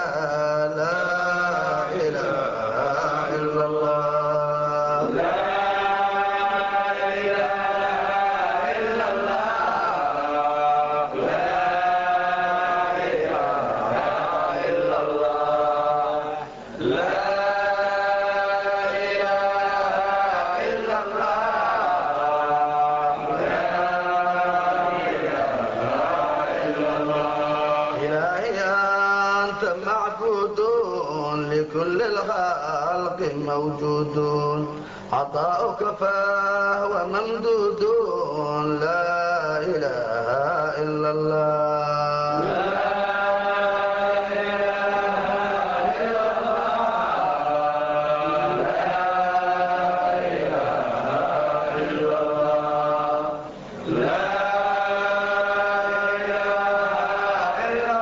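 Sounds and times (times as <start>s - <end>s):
man chanting: 0.0s - 11.1s, 26.8s - 46.8s.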